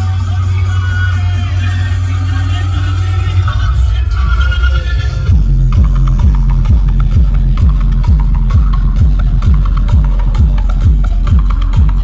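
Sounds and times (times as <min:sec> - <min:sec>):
loud electronic dance music: 0:00.0 - 0:12.0
deep bass hits: 0:03.3 - 0:12.0.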